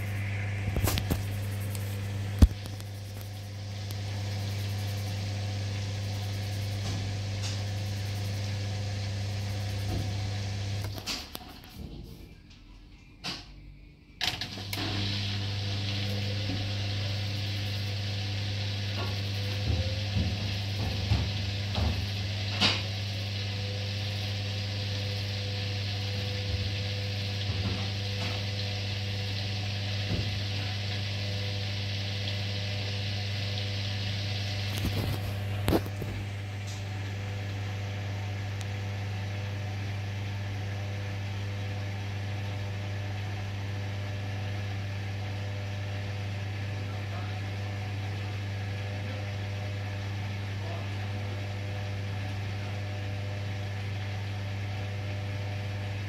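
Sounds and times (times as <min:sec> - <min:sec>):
washing machine motor hum: 0:00.0 - 0:56.0
hiss: 0:14.8 - 0:36.1.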